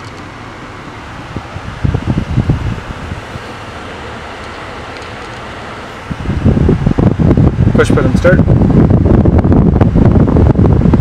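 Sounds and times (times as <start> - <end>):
microphone rumbling: 1.3 - 3.3, 6.0 - 11.0.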